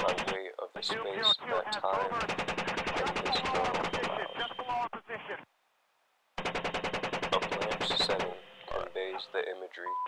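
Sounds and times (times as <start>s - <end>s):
chain gun firing bursts: 6.4s - 8.2s.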